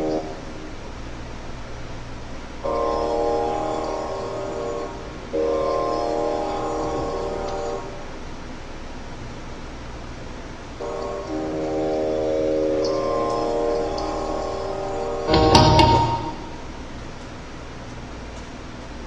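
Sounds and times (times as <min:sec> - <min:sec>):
harmonium chords: 0:02.7 - 0:08.0, 0:10.8 - 0:16.4.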